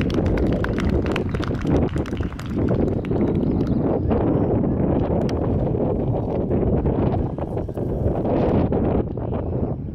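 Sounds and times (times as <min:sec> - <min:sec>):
wind buffeting microphone: 0:00.0 - 0:09.9.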